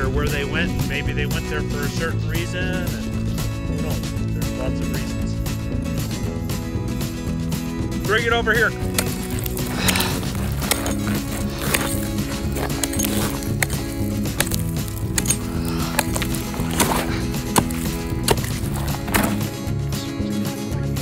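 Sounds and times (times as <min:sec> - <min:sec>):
background music: 0:00.0 - 0:21.0
ice chisel chopping ice: 0:08.8 - 0:19.5.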